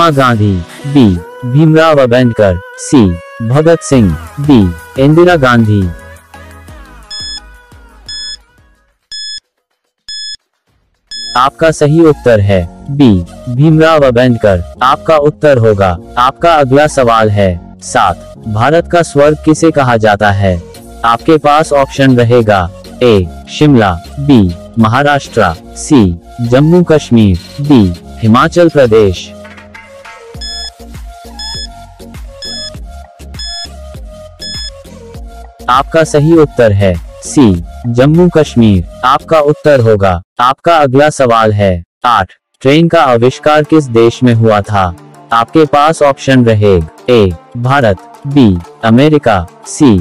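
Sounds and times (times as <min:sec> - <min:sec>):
background music: 0:00.0 - 0:40.2, 0:42.6 - 0:50.0
high bell-like beeps: 0:07.1 - 0:07.4, 0:30.4 - 0:30.8, 0:31.4 - 0:31.7, 0:32.4 - 0:32.8
high electronic countdown beeps: 0:07.1 - 0:07.5, 0:08.1 - 0:08.5, 0:09.1 - 0:09.4, 0:10.1 - 0:10.4, 0:11.1 - 0:11.5, 0:30.4 - 0:30.8, 0:31.4 - 0:31.8, 0:32.4 - 0:32.8, 0:33.4 - 0:33.8, 0:34.4 - 0:34.8.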